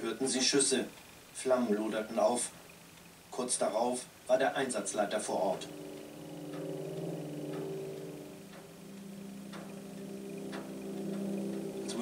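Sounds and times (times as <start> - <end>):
clock-like ticking: 4.3 - 12.0
tense low chord music: 4.6 - 12.0.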